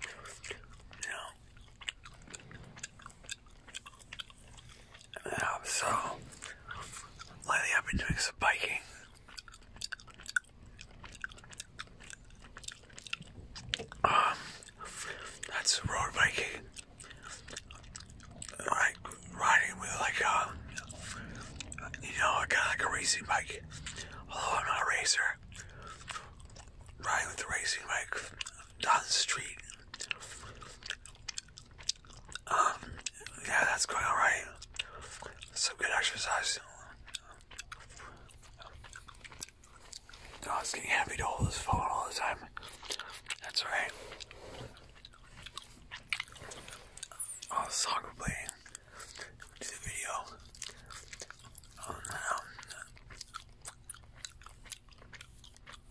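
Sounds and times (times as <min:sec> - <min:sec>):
soft whispered talk: 0:00.0 - 0:01.4, 0:05.1 - 0:09.1, 0:14.0 - 0:17.6, 0:18.4 - 0:26.4, 0:27.0 - 0:30.5, 0:32.4 - 0:37.4, 0:40.3 - 0:44.6, 0:46.9 - 0:50.9, 0:51.7 - 0:53.0
gum chewing wet clicks: 0:00.0 - 0:55.9.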